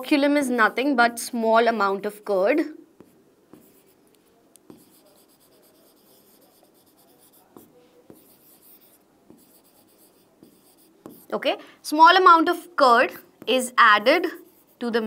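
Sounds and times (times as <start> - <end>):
pen scratching on a board: 3.0 - 4.0, 4.6 - 11.4, 13.4 - 15.0.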